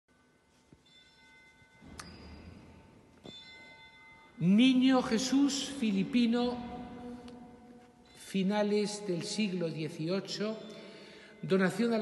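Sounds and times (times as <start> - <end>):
faint bell-like chime: 0.1 - 5.6, 10.2 - 12.0.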